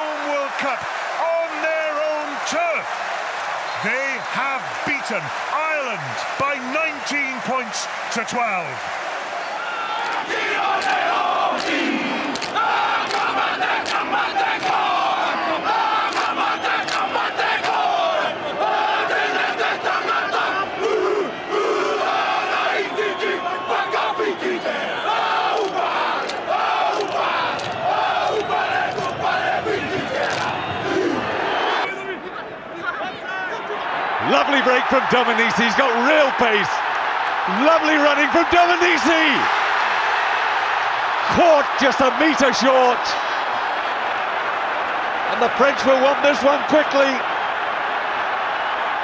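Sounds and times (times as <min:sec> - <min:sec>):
stadium crowd noise: 0:00.0 - 0:49.0
team shouting a chant: 0:00.0 - 0:49.0.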